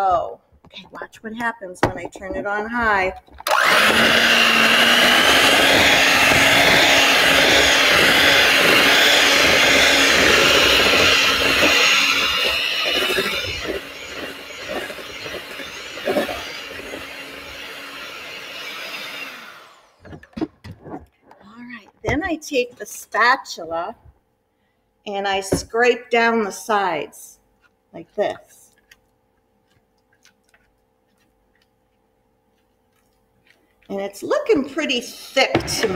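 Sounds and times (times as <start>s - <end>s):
knocks: 0.6s - 3.4s
electric hand mixer running: 3.4s - 20.2s.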